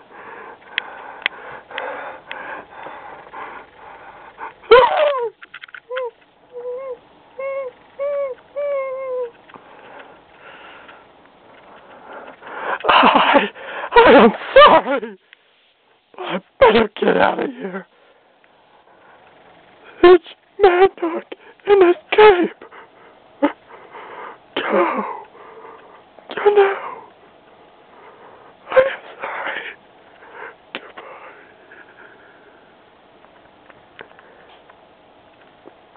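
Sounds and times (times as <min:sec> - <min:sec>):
voice whimpering: 0:04.6 - 0:09.4.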